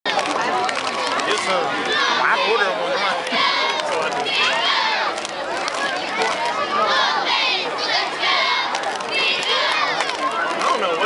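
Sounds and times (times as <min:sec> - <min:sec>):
crowd noise: 0:00.0 - 0:11.0
girls shouting a cheer: 0:01.8 - 0:05.2, 0:05.9 - 0:10.3.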